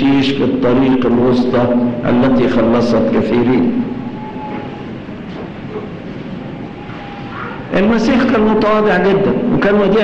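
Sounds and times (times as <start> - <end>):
microphone hiss and rumble: 0.0 - 10.0.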